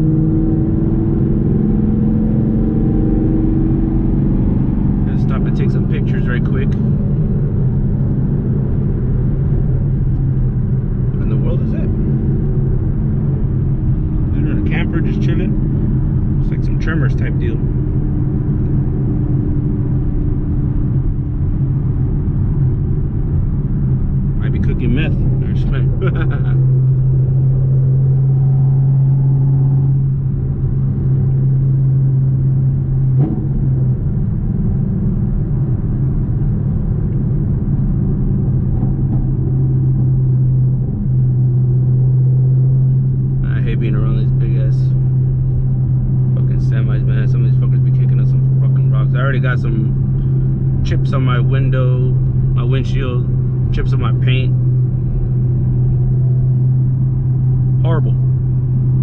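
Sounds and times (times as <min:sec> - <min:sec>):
low exhaust drone: 0:00.0 - 0:59.0
road noise: 0:00.0 - 0:59.0.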